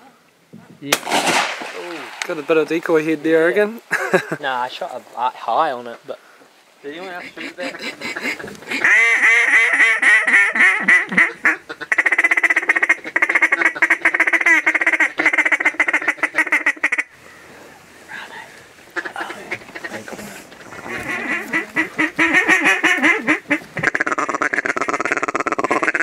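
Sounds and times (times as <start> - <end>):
duck call quacks: 7.2 - 17.1, 19.0 - 26.0.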